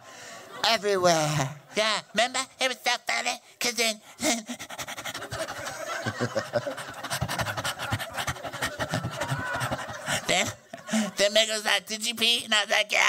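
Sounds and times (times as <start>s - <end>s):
person panting: 4.0s - 11.2s.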